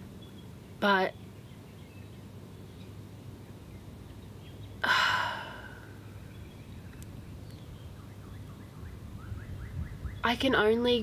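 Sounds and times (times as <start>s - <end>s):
bird chirping: 0.0s - 4.8s, 5.8s - 11.0s.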